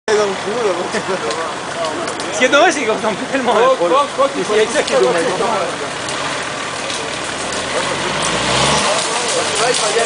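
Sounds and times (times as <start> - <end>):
car engine pulling through mud: 0.1 - 10.0
people's voices: 0.1 - 10.0.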